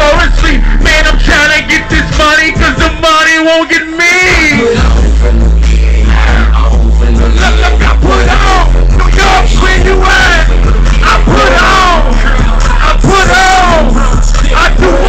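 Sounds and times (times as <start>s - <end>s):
hip-hop track with heavy bass: 0.0s - 15.0s
pitched vocal line: 0.0s - 15.0s.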